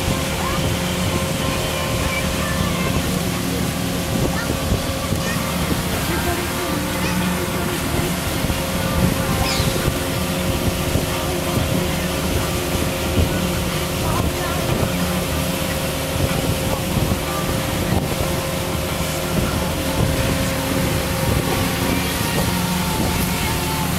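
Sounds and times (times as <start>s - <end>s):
outboard motor running: 0.0s - 23.9s
rush of wind and water: 0.0s - 23.9s.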